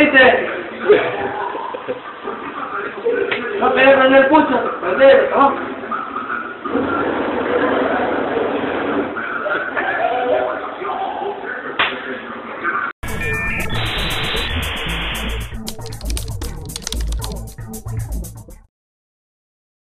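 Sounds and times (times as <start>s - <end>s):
muffled voices: 0.4s - 12.9s
music sting with rhythmic beat: 13.0s - 18.7s.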